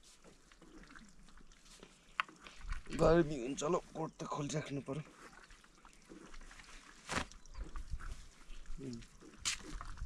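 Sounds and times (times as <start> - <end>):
faint fabric rustling: 6.2 - 8.6.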